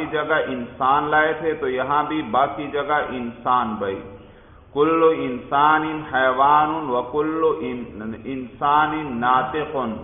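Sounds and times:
man reciting in sing-song voice: 0:00.0 - 0:10.0.

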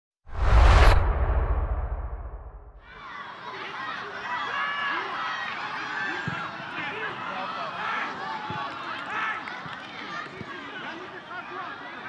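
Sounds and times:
deep boom: 0:00.3 - 0:02.8
rushing whoosh: 0:00.3 - 0:02.8.

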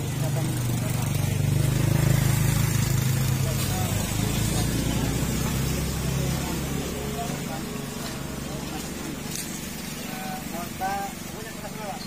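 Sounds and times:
motorcycle engine idling: 0:00.0 - 0:12.0
people talking: 0:00.0 - 0:12.0.

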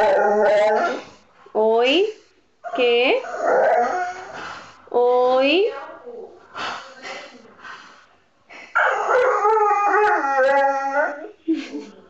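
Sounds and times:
dog howling: 0:00.0 - 0:01.1, 0:03.2 - 0:04.4, 0:08.8 - 0:11.3.

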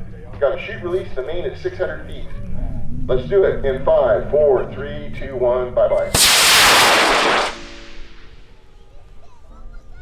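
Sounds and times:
rocket motor igniting with crack: 0:06.1 - 0:08.3
rocket motor roaring: 0:06.2 - 0:08.4.

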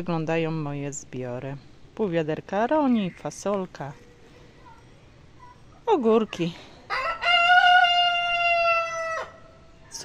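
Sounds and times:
rooster crowing: 0:06.9 - 0:09.6.

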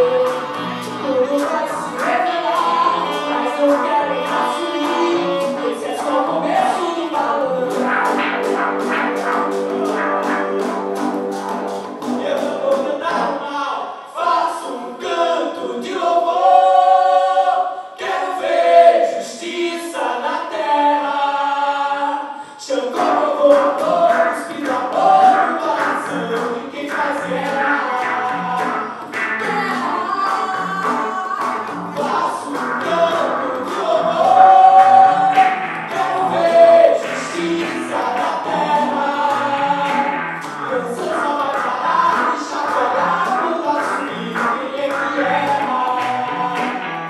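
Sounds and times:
saxophone: 0:00.0 - 0:13.2, 0:23.6 - 0:47.0
hand-drum beat: 0:00.0 - 0:13.3, 0:23.0 - 0:47.0
electric guitar: 0:00.0 - 0:13.5, 0:23.0 - 0:47.0
voices singing in harmony: 0:00.0 - 0:47.0.

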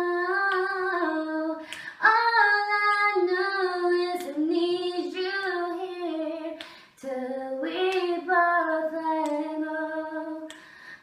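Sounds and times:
woman singing unaccompanied: 0:00.0 - 0:10.6.

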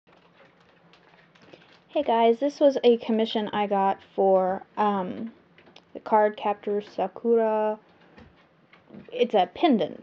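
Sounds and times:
low steady hum: 0:00.1 - 0:10.0
woman speaking: 0:02.0 - 0:07.8, 0:09.0 - 0:10.0.

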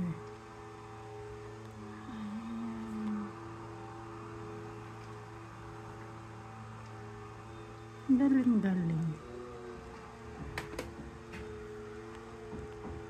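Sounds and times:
low hum: 0:00.0 - 0:13.0
sustained tones: 0:00.0 - 0:13.0.

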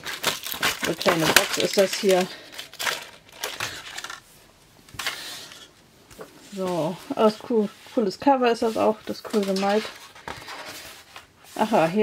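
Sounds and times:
plastic case rustling: 0:00.0 - 0:04.3, 0:08.9 - 0:11.3.

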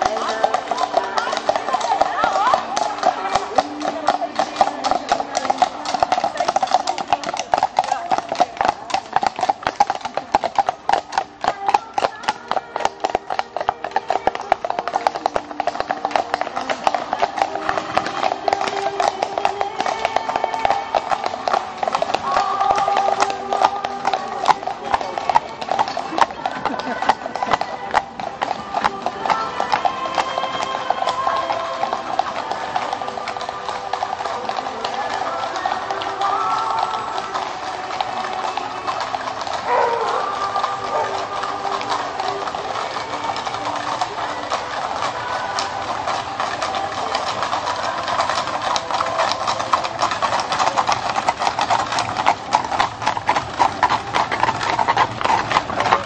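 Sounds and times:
music: 0:00.0 - 0:53.8
horse hooves clip-clopping on asphalt: 0:00.0 - 0:56.0
voices: 0:00.0 - 0:56.0.

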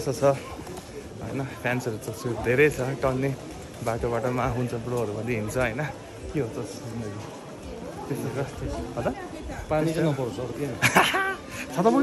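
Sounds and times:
low street murmur: 0:00.0 - 0:12.0
men talking: 0:00.0 - 0:12.0.

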